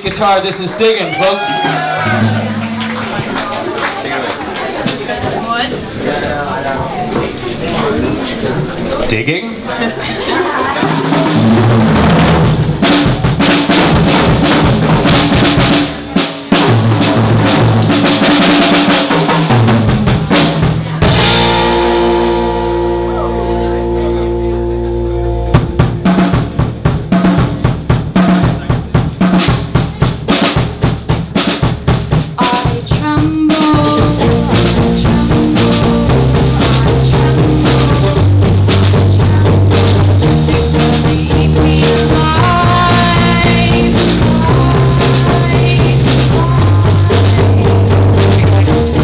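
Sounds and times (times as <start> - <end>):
live rock band playing: 0.0 - 5.8, 6.9 - 49.0
held ringing guitar chord: 21.1 - 26.6
young woman singing lead vocal: 32.4 - 48.7.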